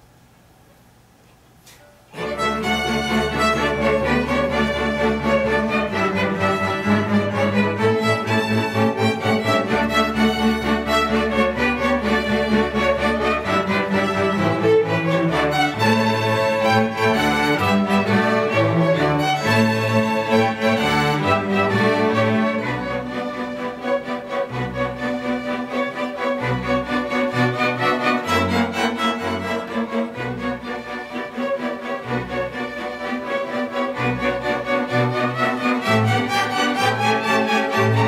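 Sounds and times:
string orchestra playing: 2.1 - 38.0.

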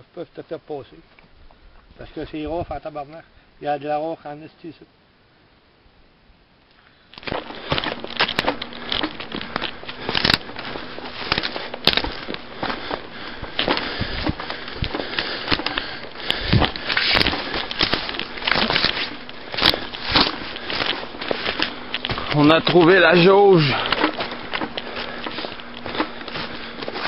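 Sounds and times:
twigs snapping underfoot: 6.7 - 27.0
footsteps through dry brush: 7.0 - 27.0.

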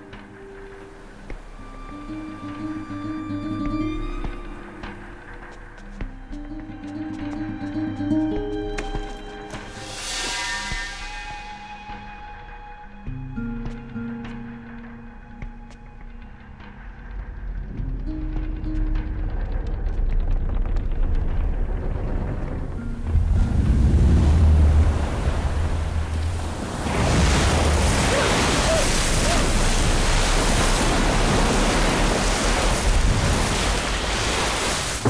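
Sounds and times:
surging water and waves: 0.0 - 19.4, 20.4 - 35.0
tense music: 0.0 - 35.0
low rumble: 16.3 - 28.1.

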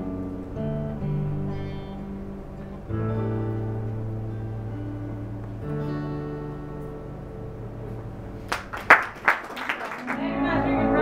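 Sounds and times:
acoustic guitar strumming: 0.0 - 8.5
hand claps: 8.5 - 10.2.

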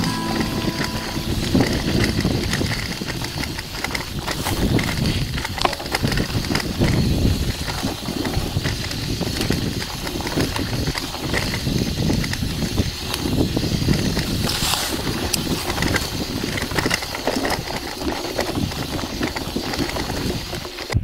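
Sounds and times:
tyre and road noise: 0.0 - 21.0
wind buffeting microphone: 0.5 - 21.0.

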